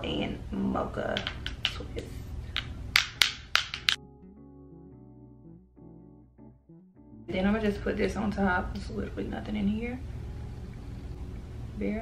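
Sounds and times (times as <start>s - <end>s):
plastic tubes clicking and tapping: 1.2s - 1.9s, 2.5s - 4.0s.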